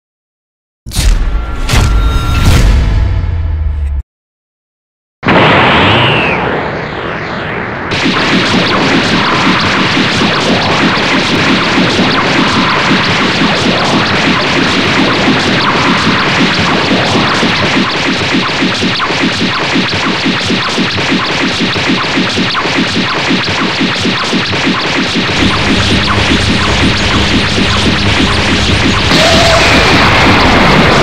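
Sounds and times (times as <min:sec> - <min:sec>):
explosion effect: 0:00.9 - 0:04.0, 0:05.2 - 0:31.0
dense rapidly pulsing crackle: 0:07.6 - 0:31.0.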